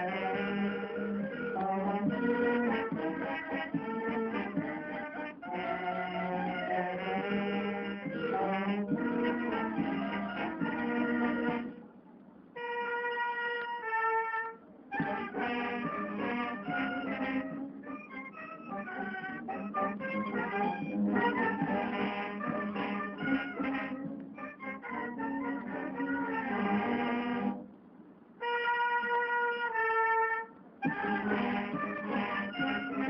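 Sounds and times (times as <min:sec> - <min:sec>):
wind band playing a waltz: 0:00.0 - 0:11.8, 0:12.6 - 0:27.7, 0:28.4 - 0:33.0.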